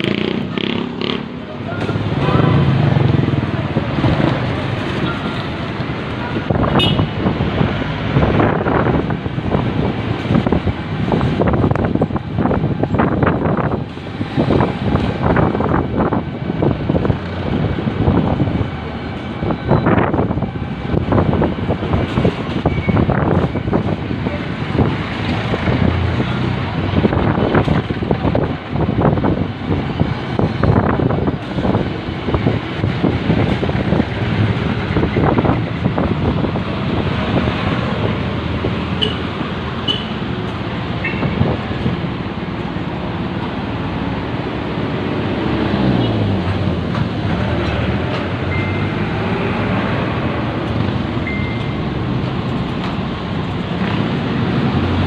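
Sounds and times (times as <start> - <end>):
motorcycle engine: 0.0 - 5.5
passing traffic: 0.0 - 55.0.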